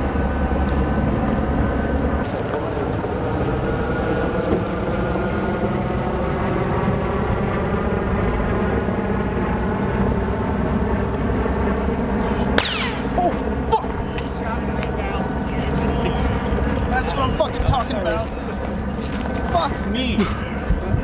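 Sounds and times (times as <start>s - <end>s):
engine drone: 0.0s - 21.0s
high-pitched falling sweep: 12.6s - 13.4s.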